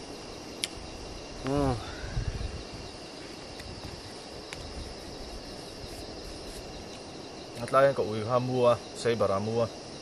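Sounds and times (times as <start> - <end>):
crickets chirping: 0.0 - 10.0
man humming: 1.4 - 2.0.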